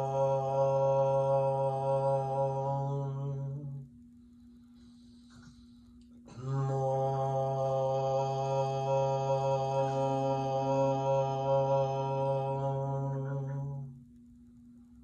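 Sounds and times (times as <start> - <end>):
man chanting om: 0.0 - 14.1.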